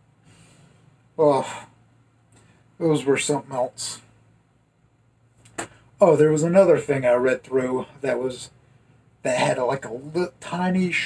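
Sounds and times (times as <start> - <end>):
low steady hum: 0.0 - 11.0
sharp intake of breath: 0.2 - 1.8.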